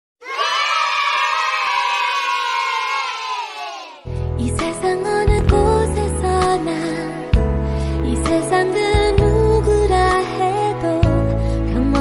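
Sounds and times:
children cheering: 0.2 - 4.1.

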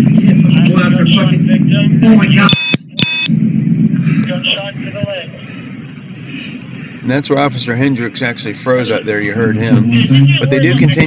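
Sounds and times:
faint voices: 0.0 - 2.5, 3.8 - 11.0
low rumbling noise: 0.0 - 11.0
short electronic beep: 2.5 - 3.3.

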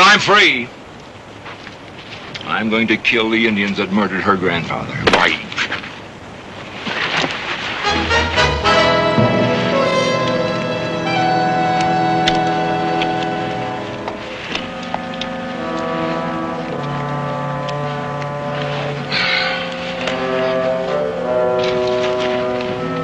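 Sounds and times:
orchestral music slow chords: 7.8 - 23.0.

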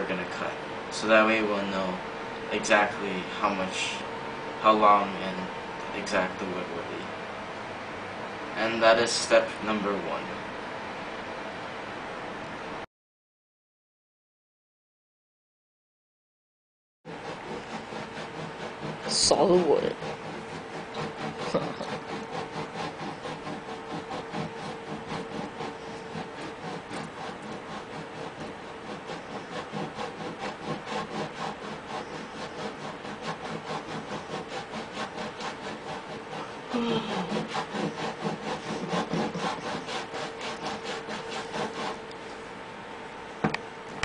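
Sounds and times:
hand saw cutting wood: 17.1 - 42.2.

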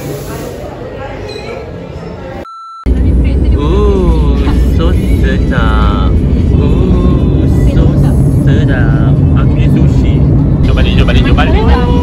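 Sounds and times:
car road and engine rumble: 2.9 - 12.0.

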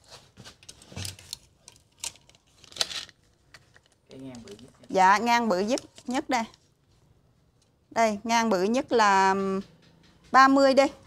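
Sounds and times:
handling rustles: 0.0 - 7.8.

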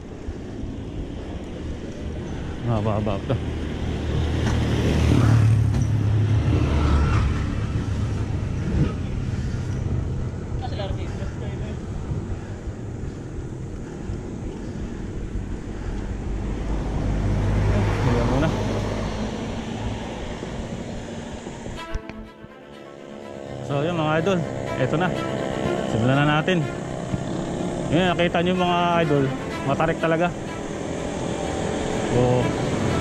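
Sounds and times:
road noise: 0.0 - 33.0
vehicle engine passing: 0.4 - 33.0
wind noise: 3.4 - 18.0.

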